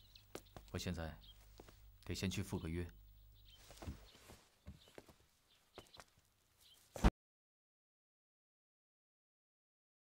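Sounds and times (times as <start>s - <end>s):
faint footsteps: 0.2s - 1.8s, 3.5s - 7.1s.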